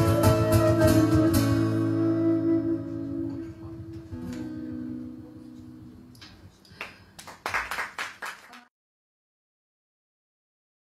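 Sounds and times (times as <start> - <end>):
acoustic guitar notes ringing: 0.0 - 6.1
audience clapping: 6.2 - 8.7.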